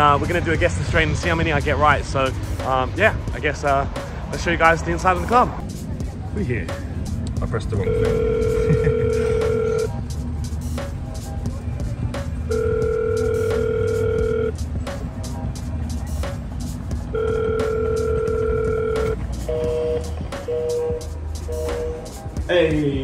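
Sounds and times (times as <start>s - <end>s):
intercom ring tone: 7.8s - 9.9s, 12.5s - 14.5s, 17.2s - 20.8s.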